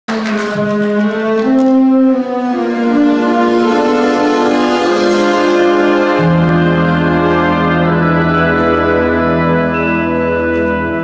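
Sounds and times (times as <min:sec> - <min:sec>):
wind band playing: 0:00.1 - 0:11.0.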